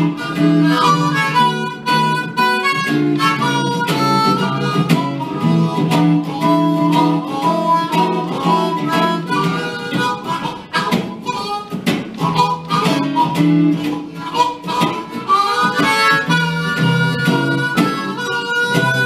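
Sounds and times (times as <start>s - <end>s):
blues harmonica: 0.0s - 19.0s
electric guitar strumming: 0.0s - 19.0s.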